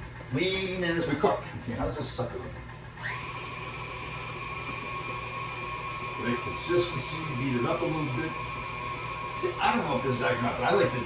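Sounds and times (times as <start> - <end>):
stand mixer motor whining: 0.0 - 11.0.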